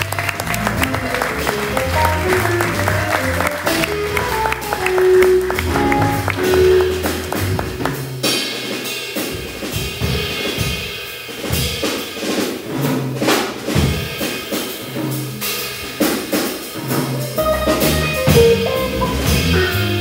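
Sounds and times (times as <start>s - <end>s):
bass line: 0.0s - 8.2s, 17.4s - 20.0s
jazz combo playing: 0.0s - 10.6s, 14.6s - 20.0s
drum kit: 0.0s - 20.0s
sustained pitched notes: 0.6s - 8.2s, 17.4s - 20.0s.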